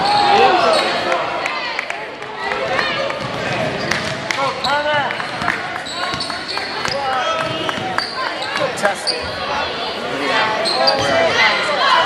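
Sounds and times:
voices of spectators and players: 0.0 - 12.0
basketball bouncing: 3.2 - 4.4
sneaker squeaks on hardwood: 5.8 - 9.4, 10.6 - 11.2.

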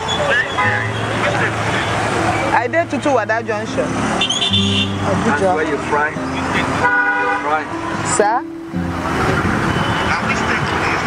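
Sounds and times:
car horn: 0.0 - 2.6, 4.1 - 8.1, 9.1 - 11.0
passing road traffic: 0.0 - 11.0.

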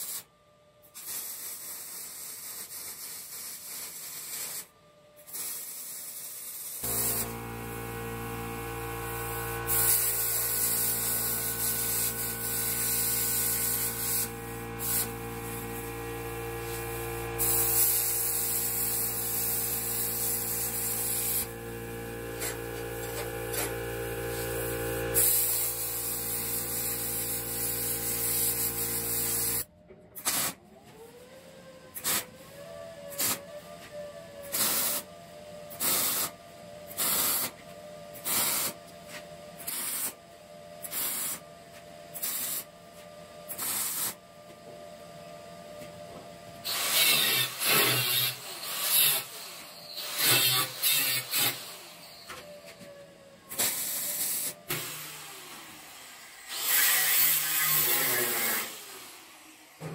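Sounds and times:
plasma cutter hissing: 0.0 - 0.2, 1.0 - 4.7, 5.3 - 7.4, 9.2 - 15.7, 16.6 - 21.6, 22.3 - 29.7, 34.5 - 35.1, 35.8 - 36.3, 37.0 - 37.5, 38.2 - 38.8, 39.7 - 40.2, 40.9 - 41.4, 42.2 - 42.7, 43.6 - 44.2, 46.6 - 51.7, 53.6 - 55.1, 56.6 - 58.9
short welding bursts: 1.0 - 4.7, 5.3 - 7.4, 9.2 - 15.6, 17.4 - 21.5, 24.3 - 29.6, 30.2 - 30.6, 32.0 - 32.2, 35.8 - 36.3, 37.0 - 37.5, 38.2 - 38.8, 39.7 - 40.2, 40.9 - 41.4, 42.2 - 42.7, 43.6 - 44.2, 46.7 - 49.4, 50.0 - 51.7, 53.6 - 54.5
angle grinder on steel: 46.7 - 51.7, 56.2 - 59.2.

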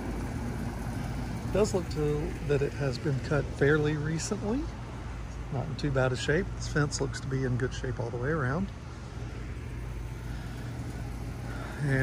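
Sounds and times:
low rumble and hum outdoors: 0.0 - 12.0.

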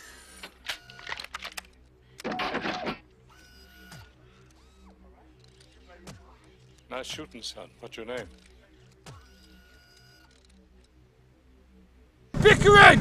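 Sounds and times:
mechanical clicks: 0.4 - 2.3, 8.2 - 11.0
robot servo whirs: 3.3 - 5.8, 8.3 - 10.6.

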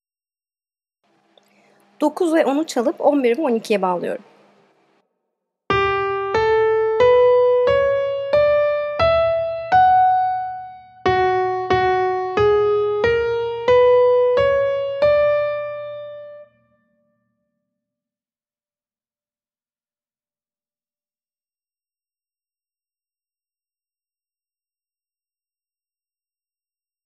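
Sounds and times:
piano melody: 5.7 - 16.8.

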